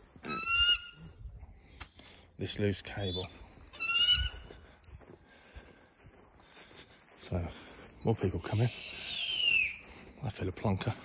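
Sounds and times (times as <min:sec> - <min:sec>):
bird of prey whistled call: 0:08.6 - 0:09.8.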